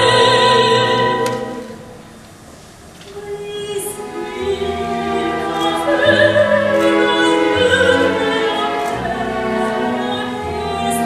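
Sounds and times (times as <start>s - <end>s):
orchestra playing held chords: 0.0s - 2.2s, 3.9s - 11.0s.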